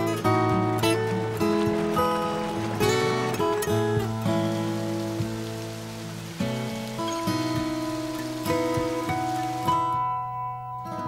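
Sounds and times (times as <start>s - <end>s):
water rushing in creek: 0.0s - 10.4s
acoustic guitar plucking: 0.0s - 11.0s.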